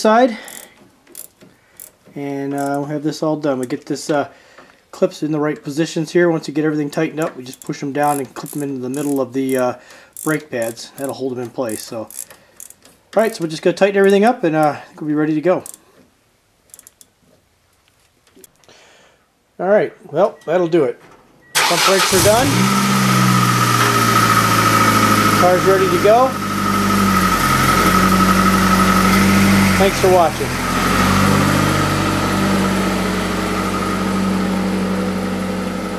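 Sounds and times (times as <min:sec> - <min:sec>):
wrench clicking on bolts: 0:00.4 - 0:02.0, 0:07.5 - 0:09.6, 0:10.2 - 0:11.1, 0:11.7 - 0:13.4, 0:15.6 - 0:15.8, 0:16.7 - 0:17.2
car engine idling: 0:21.6 - 0:35.9.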